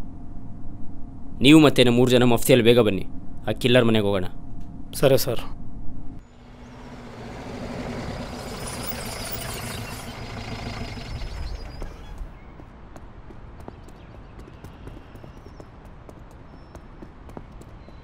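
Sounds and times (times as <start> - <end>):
people running on pavement: 11.8 - 18.0.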